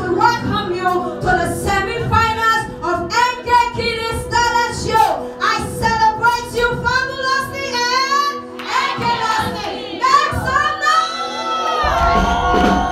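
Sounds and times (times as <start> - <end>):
woman singing into microphone: 0.0 - 11.4.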